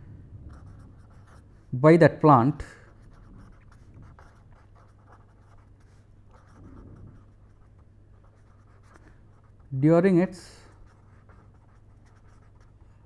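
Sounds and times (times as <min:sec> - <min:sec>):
low steady hum: 0:00.0 - 0:13.0
pen scratching on paper: 0:00.5 - 0:01.6, 0:02.9 - 0:09.8, 0:10.7 - 0:13.0.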